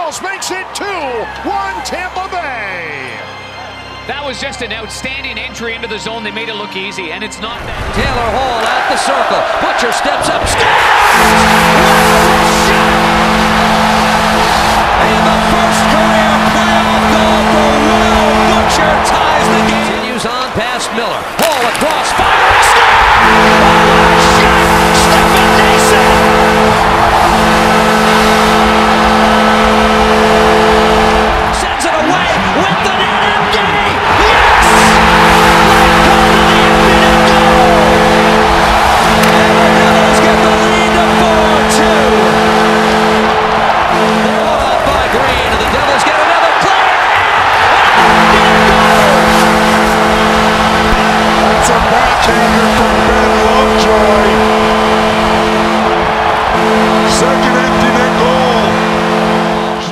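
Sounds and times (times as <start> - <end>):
crowd cheering loudly: 0.0 - 4.6, 7.5 - 59.9
goal horn blasts: 8.8 - 59.9.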